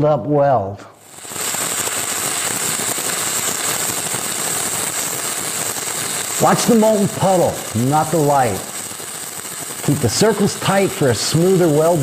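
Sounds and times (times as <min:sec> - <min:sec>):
welding arc crackling and hissing: 0:00.9 - 0:12.0.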